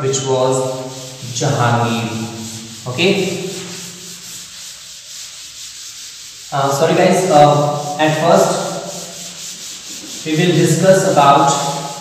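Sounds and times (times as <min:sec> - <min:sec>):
duster rubbing on chalkboard: 0:00.0 - 0:12.0.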